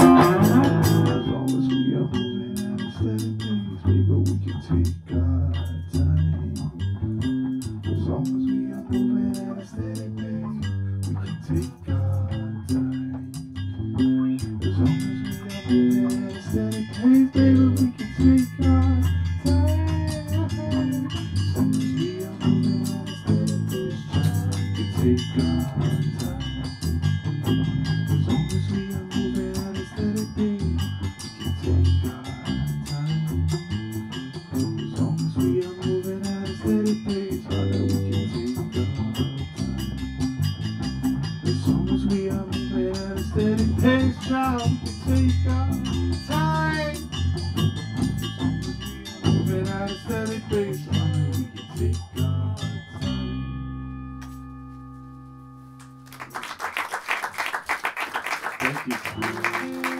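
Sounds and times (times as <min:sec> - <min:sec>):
bass line: 0:00.0 - 0:56.2
guitar: 0:00.0 - 0:56.7, 0:58.6 - 0:59.9.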